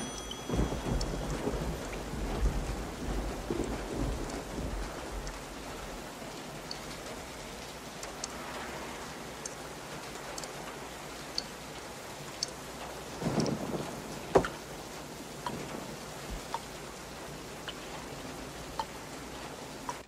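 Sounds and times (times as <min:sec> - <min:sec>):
thunder rolling: 0:00.0 - 0:06.1
heavy rain: 0:00.0 - 0:20.0.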